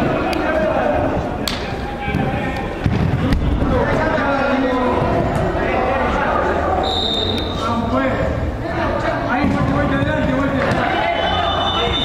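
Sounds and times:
players' voices: 0.0s - 12.0s
referee's whistle blast: 6.8s - 7.6s, 11.0s - 12.0s.

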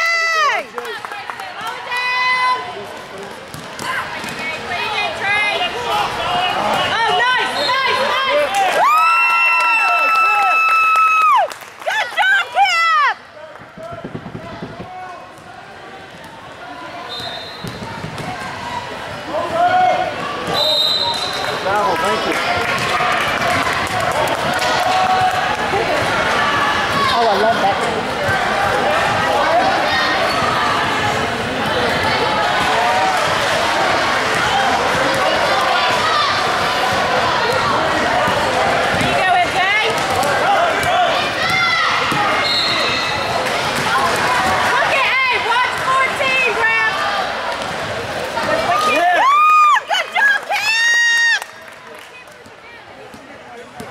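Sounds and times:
spectators' voices: 0.0s - 9.2s, 11.2s - 53.9s
loud shout: 5.9s - 13.2s, 40.4s - 43.2s, 48.5s - 51.5s
shoe squeak: 42.4s - 43.3s.

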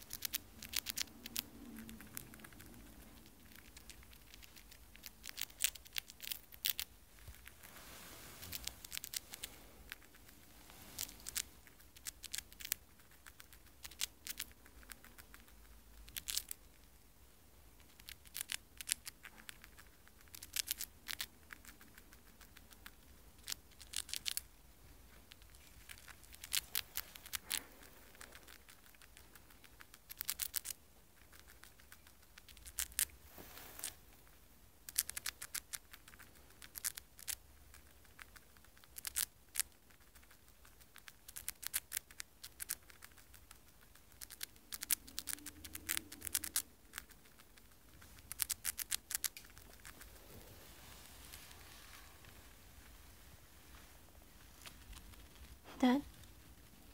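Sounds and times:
hamster nibbling crunchy food: 0.0s - 56.9s.

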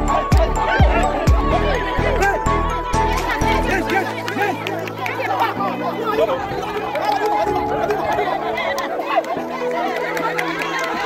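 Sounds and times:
background music with bass notes: 0.0s - 8.9s
crowd chatter and calls: 0.0s - 11.0s.

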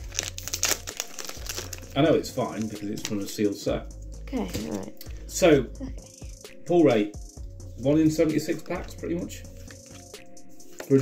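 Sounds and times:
foil wrapper crinkling and tearing: 0.0s - 3.3s.

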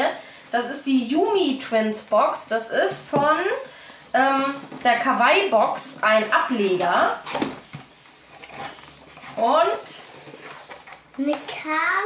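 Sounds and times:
cardboard box rustling and scraping: 6.0s - 11.1s.

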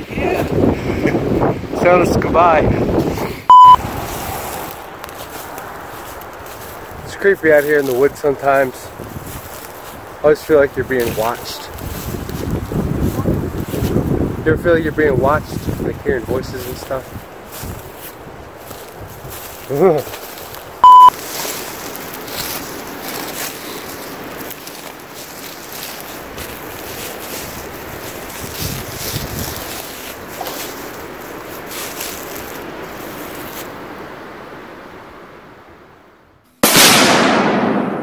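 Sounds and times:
wind rushing over microphone: 0.0s - 20.9s, 25.8s - 30.4s
loud single-pitch beep: 3.5s - 3.8s, 20.8s - 21.1s.

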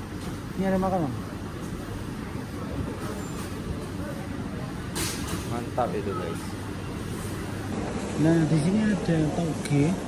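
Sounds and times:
low rumble of market hall: 0.0s - 10.0s.

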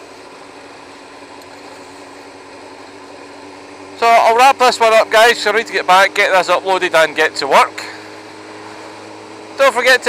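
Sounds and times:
motorcycle engine running steadily: 0.0s - 10.0s
road noise: 0.0s - 10.0s.

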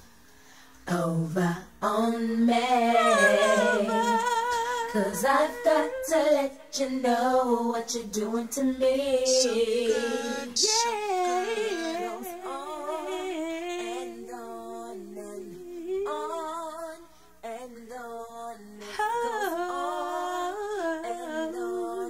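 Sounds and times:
women humming in harmony: 1.9s - 8.4s, 9.0s - 16.9s.

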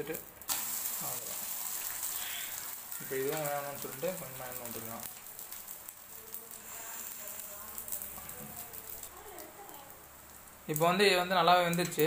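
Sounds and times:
omelette sizzling in a pan: 0.0s - 12.0s.

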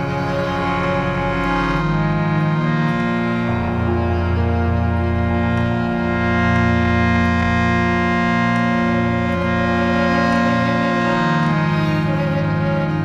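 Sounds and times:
harmonium chords: 0.0s - 13.0s
low drone: 0.0s - 13.0s.

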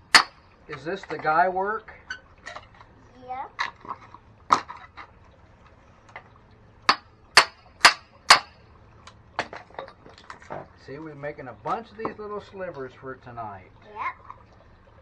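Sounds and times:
hammer striking hatchet: 0.1s - 0.4s, 6.9s - 8.6s.

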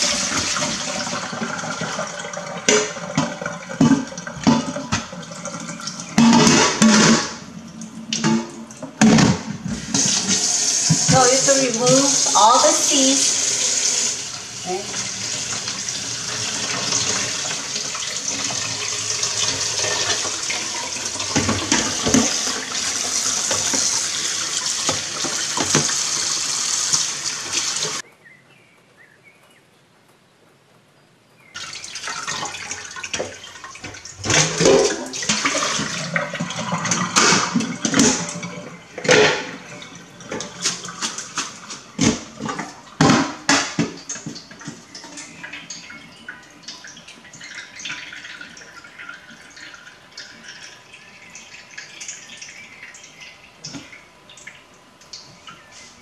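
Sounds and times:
tap running into metal sink: 0.0s - 7.4s, 14.9s - 28.0s.

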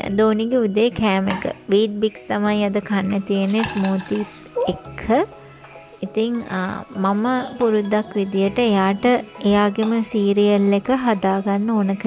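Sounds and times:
background music: 0.0s - 12.0s
plastic bowls clattering on tray: 3.4s - 4.4s.

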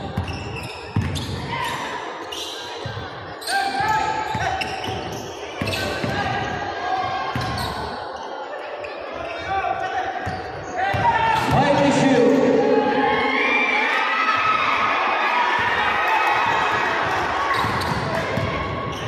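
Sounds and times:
crowd cheering: 11.0s - 19.0s
people shouting: 12.4s - 17.7s.

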